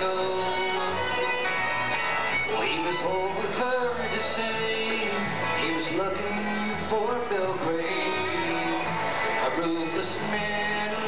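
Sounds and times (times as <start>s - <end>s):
acoustic guitars: 0.0s - 11.0s
fiddle: 0.0s - 11.0s
mandolin: 0.0s - 11.0s
upright bass: 0.0s - 11.0s.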